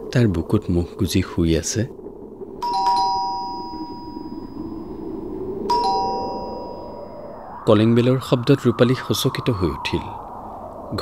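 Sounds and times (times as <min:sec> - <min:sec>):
two-tone doorbell chime: 0:02.6 - 0:04.6, 0:05.7 - 0:06.9.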